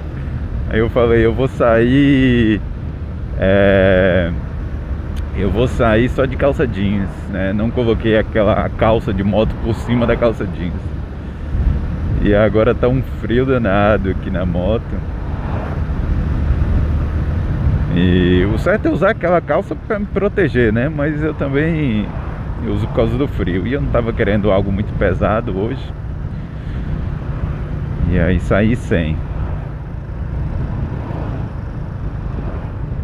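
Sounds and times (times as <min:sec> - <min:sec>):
motorcycle engine cruising: 0:00.0 - 0:33.0
wind rushing over microphone: 0:04.2 - 0:19.2, 0:20.7 - 0:33.0.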